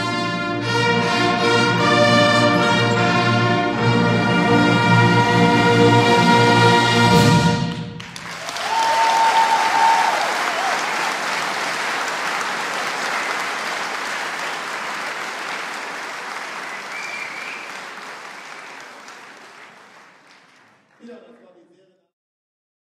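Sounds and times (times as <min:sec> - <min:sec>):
audience applauding: 0:07.7 - 0:21.6
audience cheer: 0:08.2 - 0:20.4.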